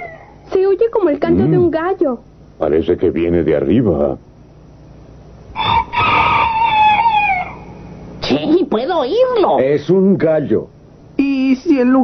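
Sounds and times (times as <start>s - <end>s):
rooster crowing: 0.0s - 0.4s, 5.5s - 8.0s.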